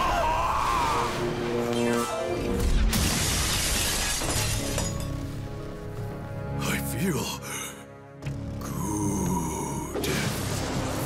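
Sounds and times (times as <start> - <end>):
glass shattering: 2.9 - 5.3.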